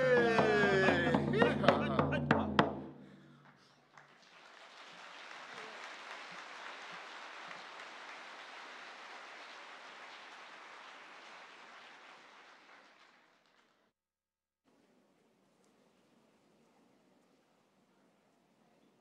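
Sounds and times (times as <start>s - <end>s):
large audience applauding: 3.5s - 13.9s.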